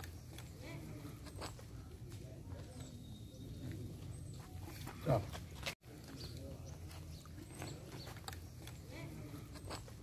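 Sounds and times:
outdoor background murmur: 0:00.0 - 0:10.0.

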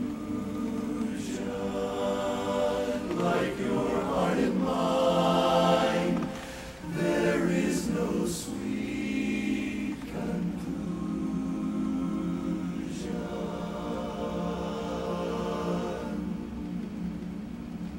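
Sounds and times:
men's chorus singing a cappella: 0:00.0 - 0:17.1.

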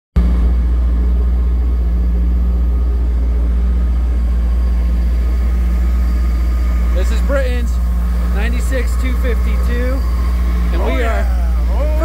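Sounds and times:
boat engine low rumble: 0:00.2 - 0:12.0.

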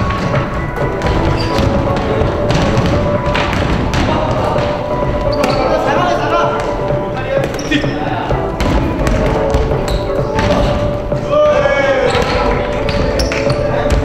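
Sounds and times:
basketball bouncing on hardwood: 0:00.0 - 0:05.6, 0:08.6 - 0:10.9
background music: 0:00.0 - 0:14.0
sneakers squeaking: 0:00.0 - 0:14.0
voices in large hall: 0:00.0 - 0:14.0.

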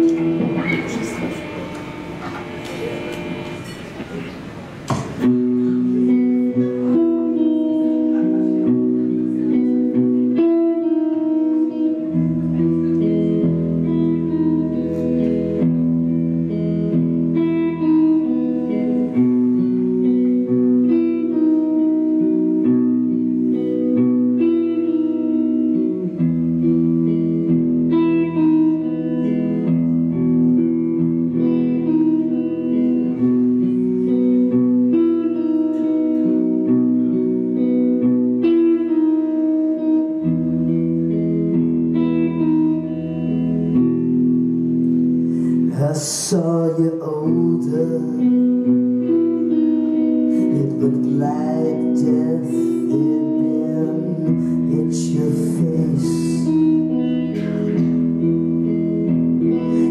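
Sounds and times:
crowd noise: 0:00.0 - 0:59.9
electric bass low notes: 0:00.0 - 0:59.9
electric guitar picking ringing notes: 0:00.0 - 0:59.9.

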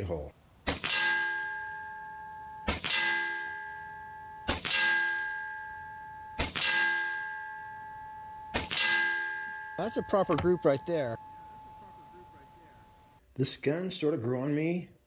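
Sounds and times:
air rifle shots: 0:00.6 - 0:01.5, 0:02.7 - 0:03.5, 0:04.5 - 0:05.3, 0:06.4 - 0:07.2, 0:08.5 - 0:09.4
pellet striking metal with clang: 0:00.7 - 0:13.0.

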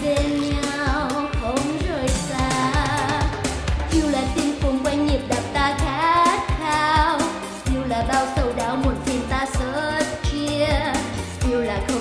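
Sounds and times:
karaoke backing track with drums: 0:00.0 - 0:12.0
woman singing pop ballad: 0:00.0 - 0:12.0.

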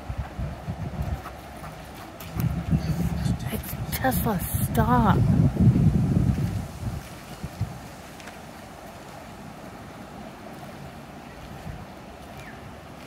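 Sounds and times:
wind on microphone rumble: 0:00.0 - 0:13.0.

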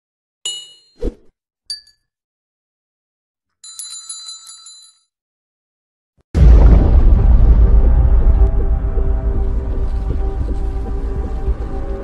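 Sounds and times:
low thud: 0:06.4 - 0:11.3.

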